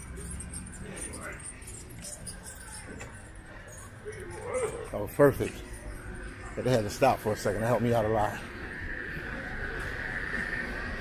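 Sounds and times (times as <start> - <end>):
bicycle rattling and jingling: 0.0 - 8.4.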